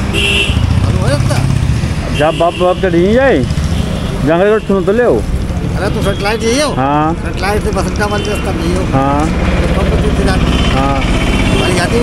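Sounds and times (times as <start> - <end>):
motorcycles passing: 0.0 - 12.0
road traffic rumble: 0.0 - 12.0
man talking: 0.9 - 1.6, 4.2 - 12.0.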